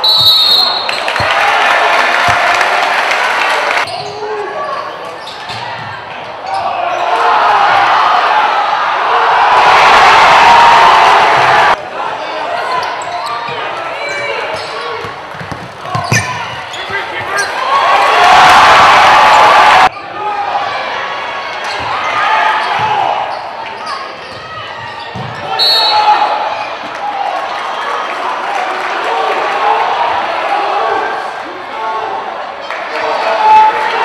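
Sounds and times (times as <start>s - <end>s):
referee's whistle: 0.0s - 1.1s, 25.5s - 26.2s
crowd voices and shouts: 0.0s - 34.0s
basketball bouncing: 15.0s - 17.4s.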